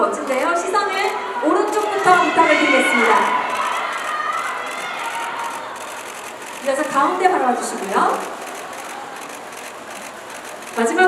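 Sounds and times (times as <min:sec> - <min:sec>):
murmur of crowd in hall: 0:00.0 - 0:11.0
camera shutter clicks: 0:03.2 - 0:07.1, 0:07.8 - 0:11.0.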